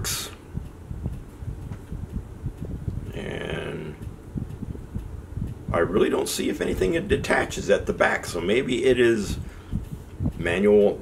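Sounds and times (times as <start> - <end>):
low uneven rumbling: 0.0 - 11.0.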